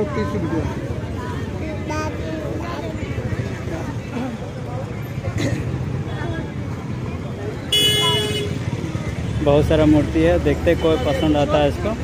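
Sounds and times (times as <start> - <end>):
crowd chatter: 0.0 - 12.0
traffic rumble: 0.0 - 12.0
vehicle horn honking: 7.7 - 8.7.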